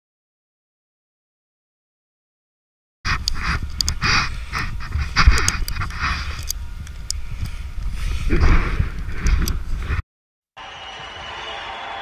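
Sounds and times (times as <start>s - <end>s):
wind rumble on microphone: 3.1s - 10.0s.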